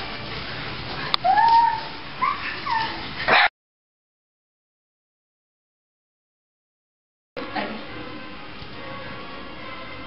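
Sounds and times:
dog whining: 1.2 - 3.3.

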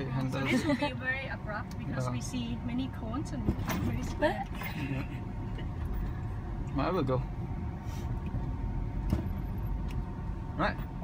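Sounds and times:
low car cabin rumble: 0.0 - 11.0.

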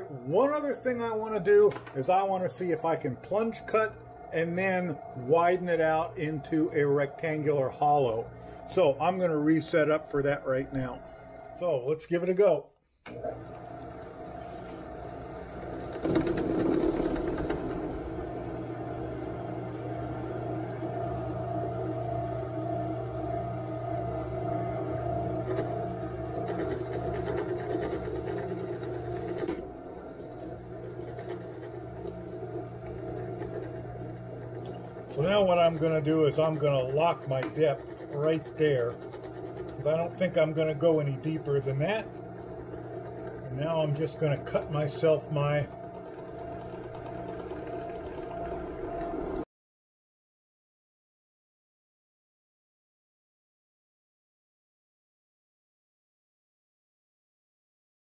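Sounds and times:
end mill cutting metal: 0.0 - 11.7, 13.1 - 49.4
drill press motor running: 0.0 - 49.4.

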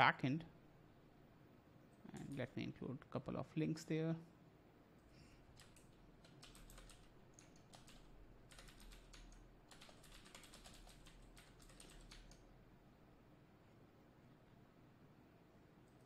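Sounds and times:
faint keyboard typing: 1.9 - 2.7, 5.0 - 12.5, 15.8 - 16.0.

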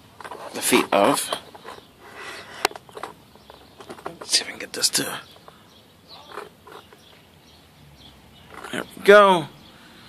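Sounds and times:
plastic parts creaking and clicking: 0.2 - 5.6, 6.2 - 7.2, 8.5 - 8.8.

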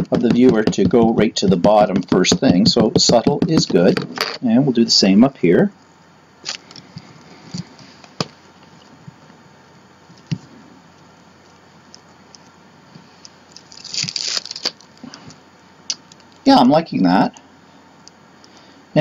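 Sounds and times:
rubber stamp tapping: 0.0 - 4.2
paper rustling: 13.5 - 14.9.

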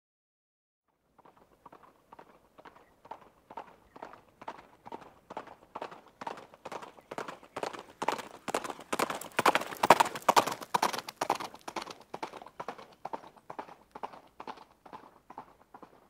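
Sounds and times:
horse hooves trotting: 1.0 - 16.0.

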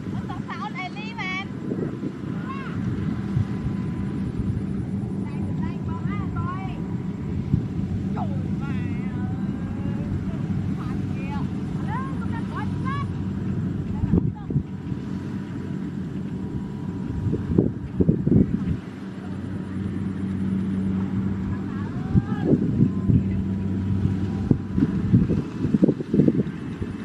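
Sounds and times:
engine droning: 0.0 - 27.0.

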